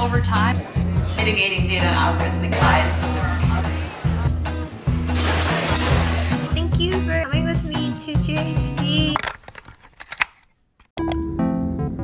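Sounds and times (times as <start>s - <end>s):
music: 0.0s - 9.2s, 11.0s - 12.0s.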